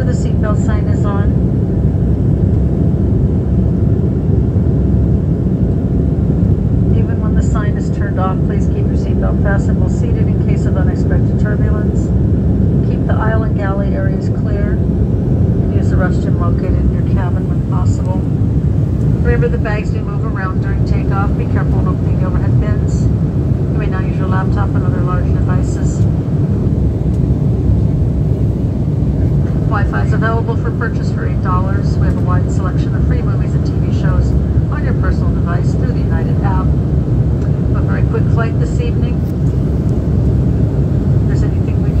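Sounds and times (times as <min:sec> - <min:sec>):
airliner cabin engine roar: 0:00.0 - 0:42.0.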